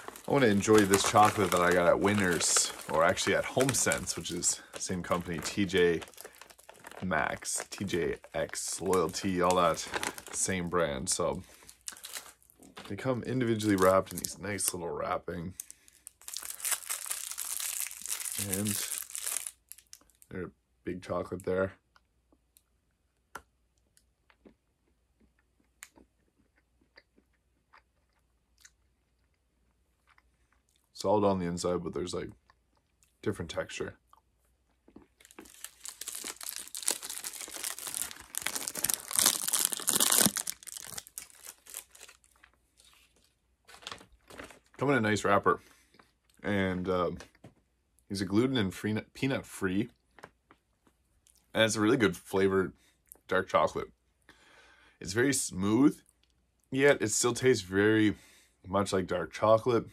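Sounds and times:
candy wrapper crinkling: 0.0 - 14.8, 15.6 - 20.3, 35.0 - 44.8.

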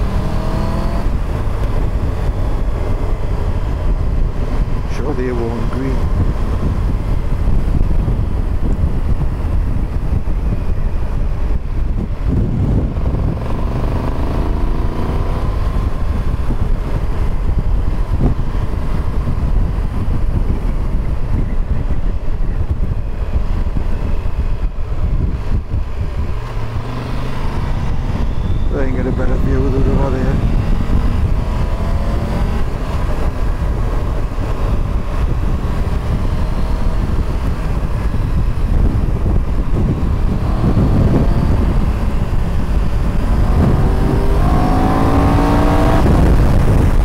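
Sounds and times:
motorcycle engine running: 0.0 - 47.0
wind rush on microphone: 0.0 - 47.0.

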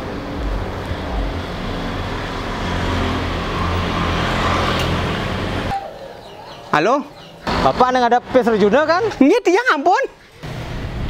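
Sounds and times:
tyre noise on road: 0.0 - 5.8
vehicle engine hum: 0.0 - 5.9.

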